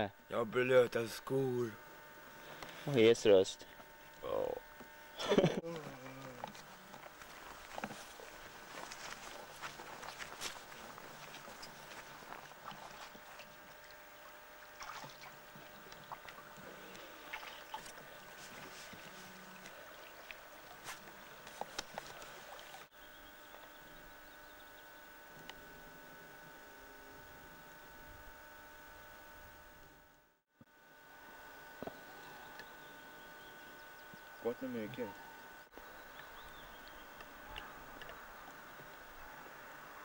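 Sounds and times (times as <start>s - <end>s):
faint hum tones: 0.0s - 40.0s
footsteps: 6.4s - 13.6s.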